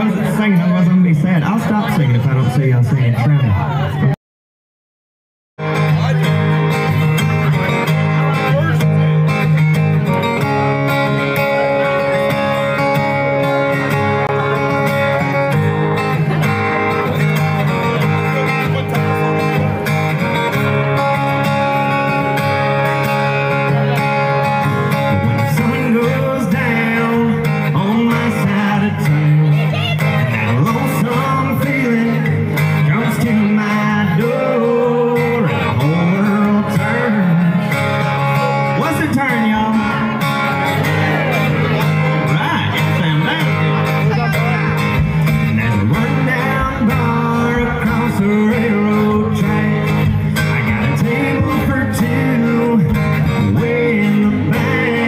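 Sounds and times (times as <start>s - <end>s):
acoustic guitars playing: 0.0s - 4.2s, 5.6s - 55.0s
man singing: 11.0s - 55.0s.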